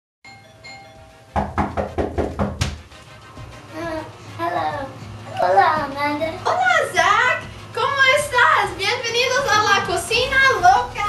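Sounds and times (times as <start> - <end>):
faint doorbell chime: 0.2 - 1.4
rapid loud knocks on a door: 1.3 - 3.5.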